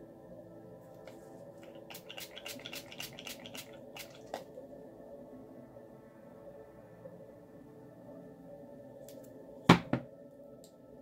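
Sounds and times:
spray bottle hissing sprays: 1.6 - 4.4.

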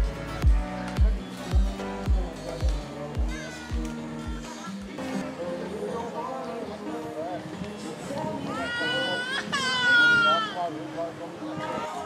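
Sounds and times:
faint background music: 0.0 - 12.0
high-pitched voice wailing: 8.5 - 10.6.

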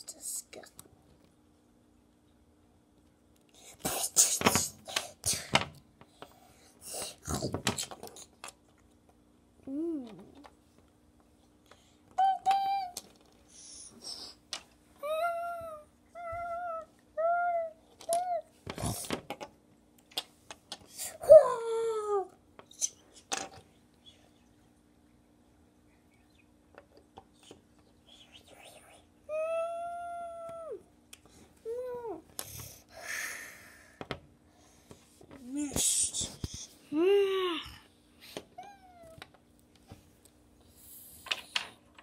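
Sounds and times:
child making play sound effects: 9.7 - 10.5, 12.2 - 13.1, 15.0 - 19.2, 20.9 - 23.0, 29.3 - 30.9, 31.6 - 32.3, 35.4 - 37.9.

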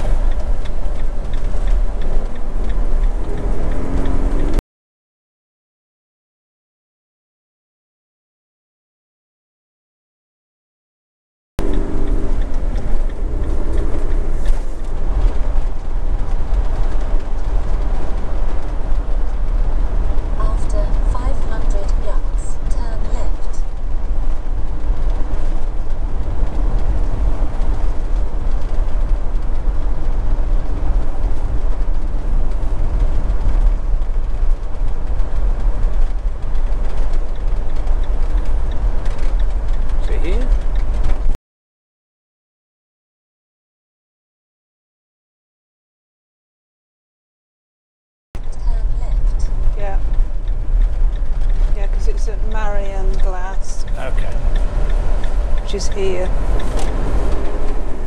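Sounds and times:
motorhome engine and tyre noise: 0.0 - 4.6, 11.6 - 41.4, 48.4 - 58.0.

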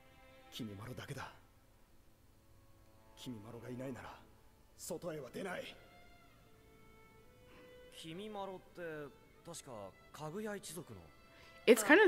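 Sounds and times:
quiet background music: 0.0 - 12.0
man speaking: 3.2 - 5.8.

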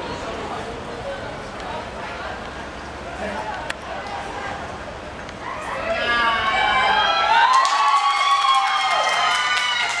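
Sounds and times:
people shouting cheers: 5.4 - 10.0.

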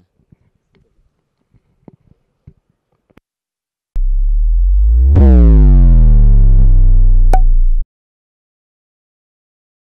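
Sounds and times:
deep synthesizer tone: 4.0 - 7.8.

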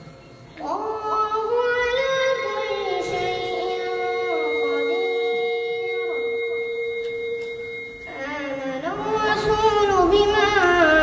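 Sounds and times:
sound system feedback ringing: 0.0 - 11.0
child reciting: 0.6 - 7.1, 8.1 - 11.0.

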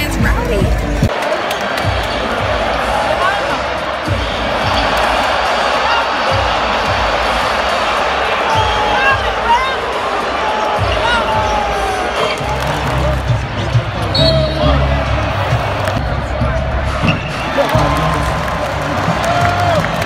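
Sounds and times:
arena crowd din: 0.0 - 20.0.

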